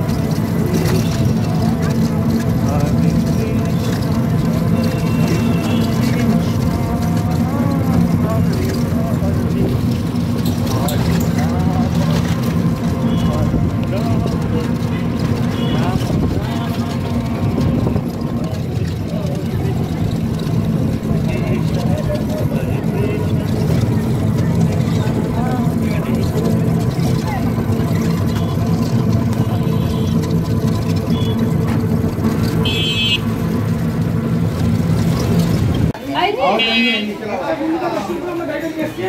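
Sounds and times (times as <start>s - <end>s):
street traffic noise: 0.0s - 39.0s.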